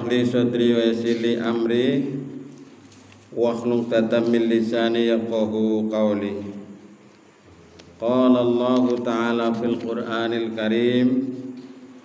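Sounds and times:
man chanting melodically: 0.0 - 2.5, 3.3 - 6.8, 8.0 - 11.6.

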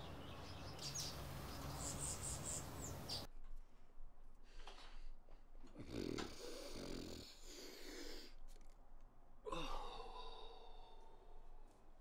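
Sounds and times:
man sniffing hard: 5.8 - 8.4.

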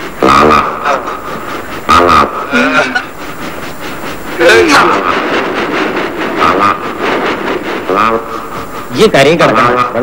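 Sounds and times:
fast even ticking: 0.0 - 10.0
noisy background: 0.0 - 10.0.

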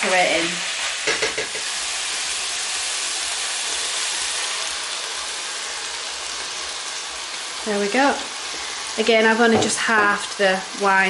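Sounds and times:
meat sizzling in a frying pan: 0.0 - 11.0.

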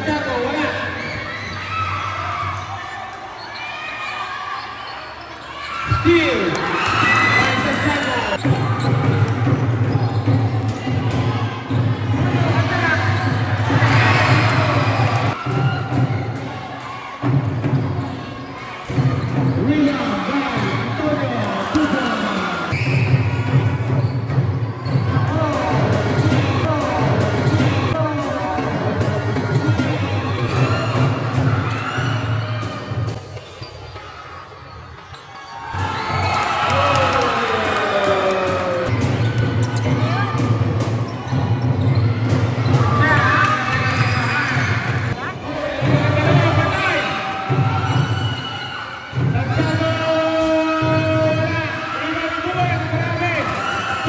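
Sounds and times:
players and spectators shouting: 0.0 - 54.0.

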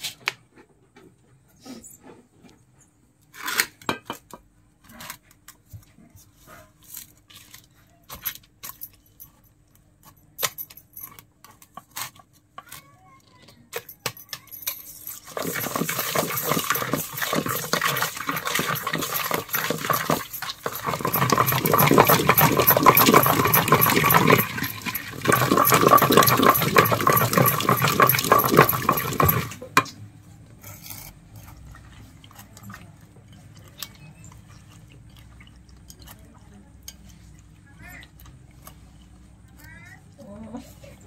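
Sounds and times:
wooden masher pounding in a pot: 15.2 - 29.9.

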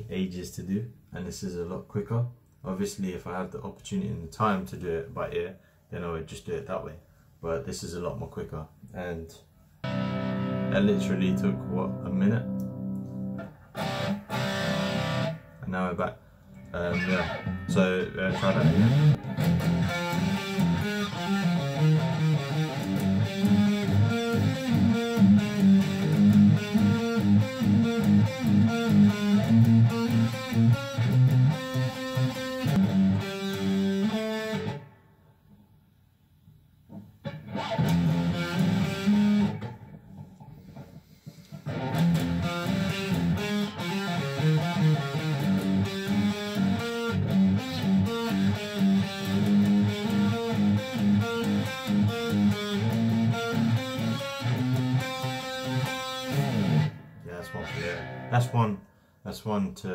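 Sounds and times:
distorted electric guitar riff: 9.8 - 15.9, 16.5 - 35.0, 37.2 - 58.8.

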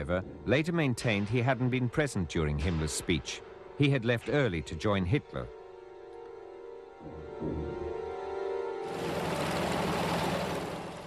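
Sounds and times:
propeller engines droning: 6.8 - 11.0.

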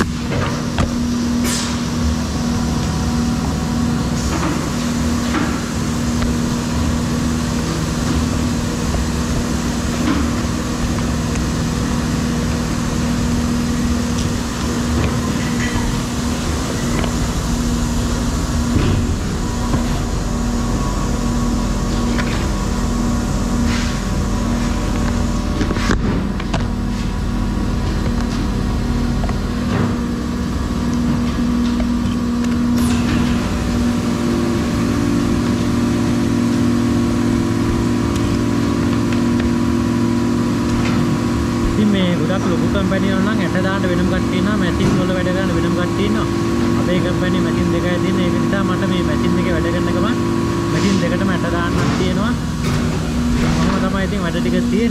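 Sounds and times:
factory machinery hum: 0.0 - 54.9.

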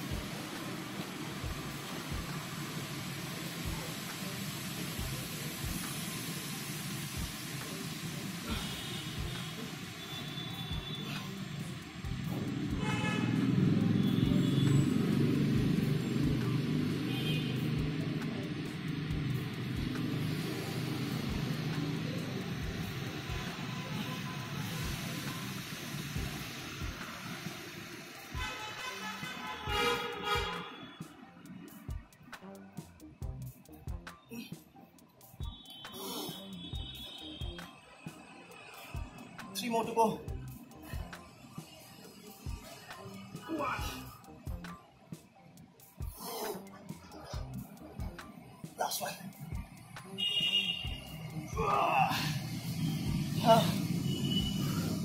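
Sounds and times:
street traffic rumbling: 0.0 - 55.0
vehicle passing: 11.1 - 25.4, 46.6 - 55.0
car horn toots: 12.8 - 13.4, 28.4 - 31.0, 50.2 - 51.0.

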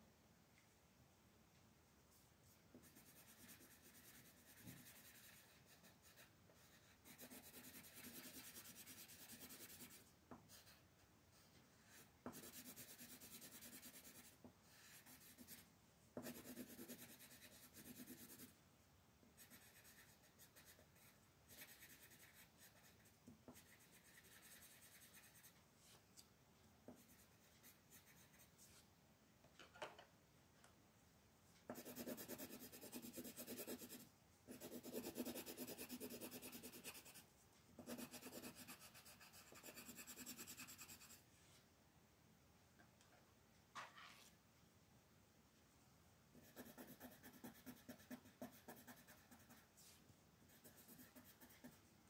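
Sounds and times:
colored pencil scratching on paper: 2.7 - 18.5, 19.4 - 26.0, 26.9 - 28.8, 31.7 - 41.2, 46.4 - 51.8.

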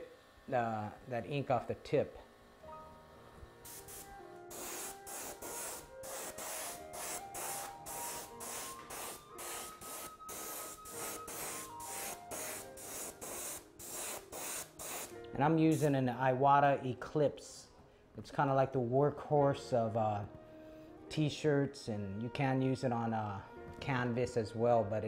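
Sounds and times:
airbrush hissing bursts: 3.6 - 16.0.

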